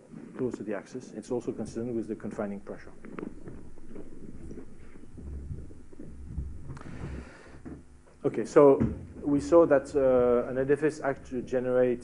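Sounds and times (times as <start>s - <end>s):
low rumble: 1.4s - 8.3s
low irregular thumps: 1.4s - 12.0s.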